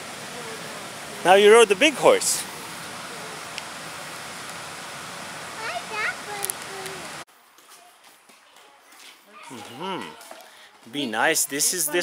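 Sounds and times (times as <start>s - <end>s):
steady background hiss: 0.0s - 7.3s.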